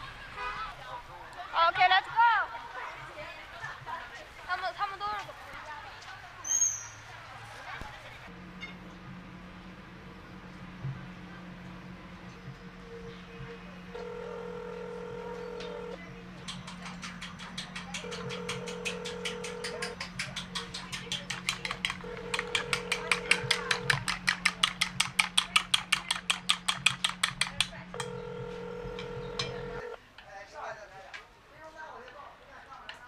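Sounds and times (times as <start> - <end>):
low steady hum: 8.4 - 16.4, 22.0 - 24.4, 27.7 - 30.0
eggs beaten in a bowl: 16.7 - 28.3.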